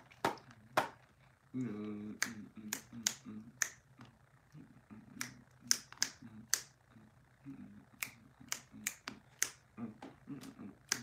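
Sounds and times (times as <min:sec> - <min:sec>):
faint low humming: 0:00.0 - 0:11.0
finger snaps: 0:02.2 - 0:04.1, 0:05.2 - 0:06.8, 0:08.0 - 0:09.6, 0:10.4 - 0:11.0.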